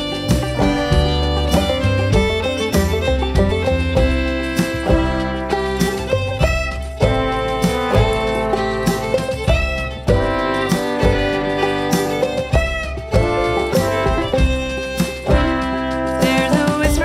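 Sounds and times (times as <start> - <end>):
fiddle melody: 0.0 - 17.0
strummed guitar: 0.0 - 17.0.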